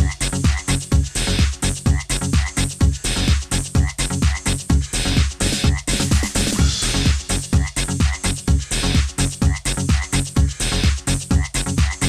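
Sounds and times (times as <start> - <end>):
croaking frog-like sounds: 0.0 - 0.9, 1.9 - 2.8, 3.8 - 4.6, 5.5 - 8.4, 9.4 - 12.0
deep kick-drum thumps: 0.0 - 12.0
electronic dance music: 0.0 - 12.0.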